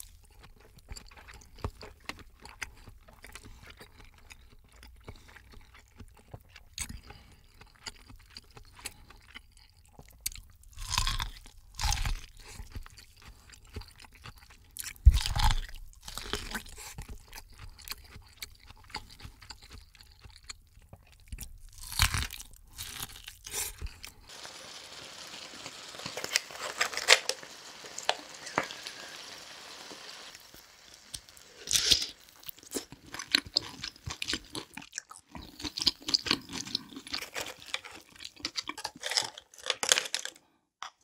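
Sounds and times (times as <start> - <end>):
crunching and wet chewing: 0.0 - 24.4, 25.7 - 28.9, 29.5 - 40.4
background hiss: 24.2 - 33.5.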